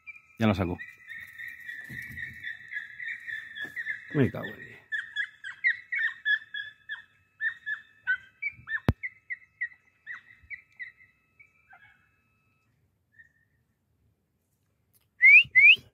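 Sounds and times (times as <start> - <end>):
dog yelping: 1.8 - 12.2.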